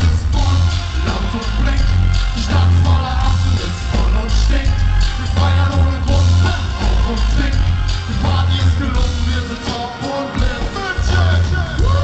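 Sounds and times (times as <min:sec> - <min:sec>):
heavy bass: 0:00.0 - 0:12.0
horns: 0:00.0 - 0:12.0
person singing: 0:00.0 - 0:12.0.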